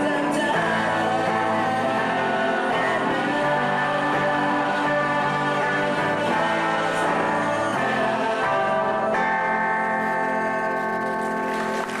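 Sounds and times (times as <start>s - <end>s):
electric guitars sustained chord: 0.0s - 12.0s.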